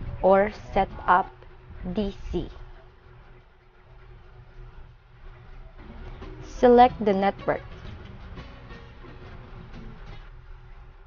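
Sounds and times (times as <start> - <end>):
low hum: 0.0 - 11.0
low steady hiss: 0.0 - 11.0.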